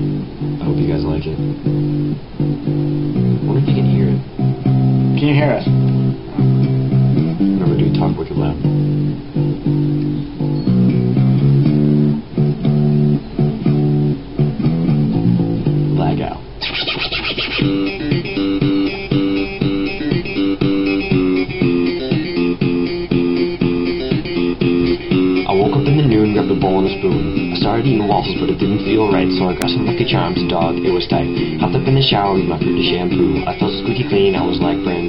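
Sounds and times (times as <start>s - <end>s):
instrumental rap backing track: 16.6s - 35.0s.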